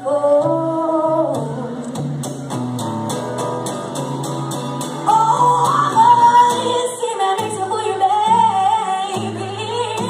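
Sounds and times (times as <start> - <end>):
woman singing blues: 0.0 - 2.1, 5.0 - 10.0
acoustic guitar: 0.0 - 10.0.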